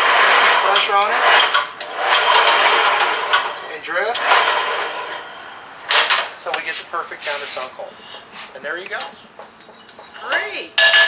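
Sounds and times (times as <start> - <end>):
drill press grinding metal: 0.0 - 6.4.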